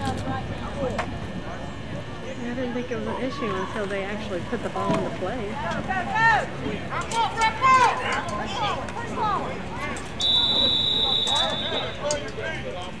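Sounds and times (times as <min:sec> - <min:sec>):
crowd shouting and cheering: 0:05.5 - 0:12.7
referee's whistle blast: 0:10.2 - 0:12.0.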